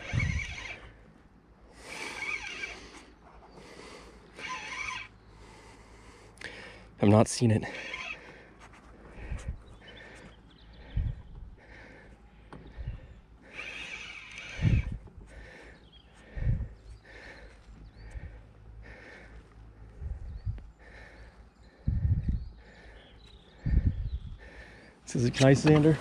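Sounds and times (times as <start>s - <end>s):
fishing reel whirring: 0.0s - 1.0s, 1.8s - 3.1s, 4.3s - 5.2s, 7.7s - 8.2s, 13.4s - 15.2s.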